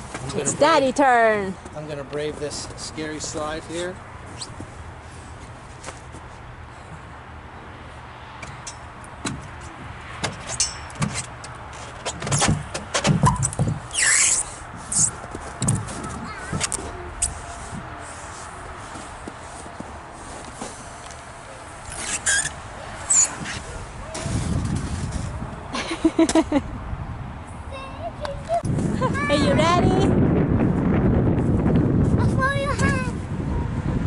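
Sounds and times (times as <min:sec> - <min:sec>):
clothing squeaking on plastic: 0:13.2 - 0:17.5, 0:21.9 - 0:25.4.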